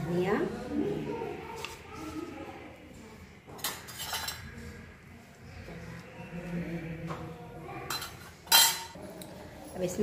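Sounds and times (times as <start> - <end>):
metal spoon clinking against pan: 3.6 - 4.4, 7.9 - 9.3.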